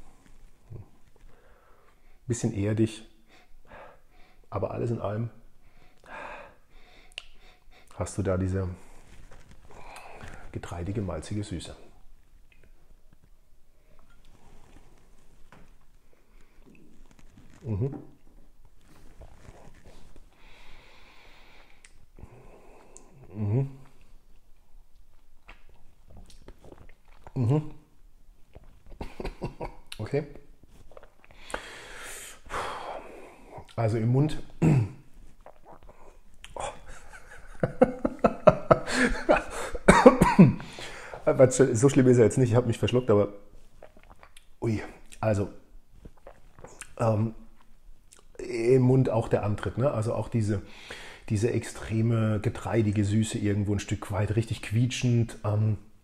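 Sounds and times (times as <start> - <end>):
man coughing: 34.6 - 35.0, 38.8 - 40.7
person sipping whisky: 35.2 - 36.9, 46.0 - 47.0.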